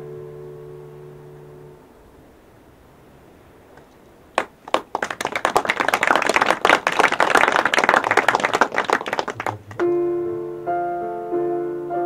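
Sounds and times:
audience clapping: 4.3 - 10.0
digital piano playing: 9.8 - 12.0.

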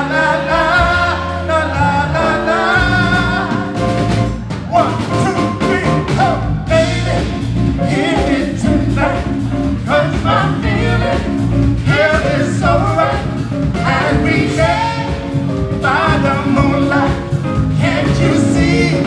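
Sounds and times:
man singing: 0.0 - 3.9, 4.7 - 19.0
soul band playing: 0.0 - 19.0.

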